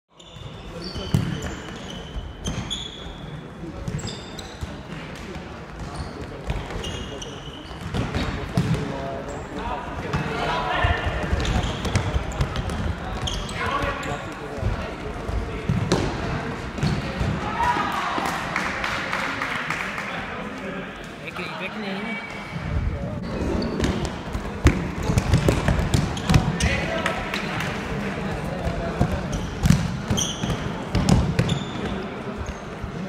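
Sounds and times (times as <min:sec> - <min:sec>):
shoe squeaks: 0:00.1 - 0:04.8, 0:05.9 - 0:07.9, 0:13.2 - 0:14.3, 0:23.4 - 0:24.0, 0:29.3 - 0:30.7, 0:31.4 - 0:32.7.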